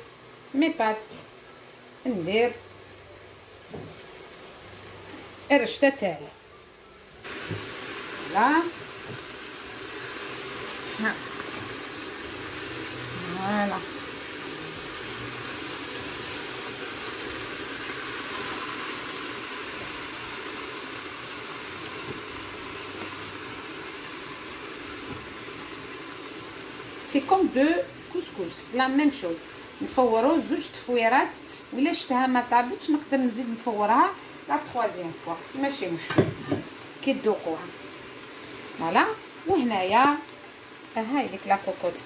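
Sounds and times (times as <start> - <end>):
water boiling in pot: 2.0 - 6.2, 7.2 - 42.0
steam hissing from pot: 7.2 - 42.0.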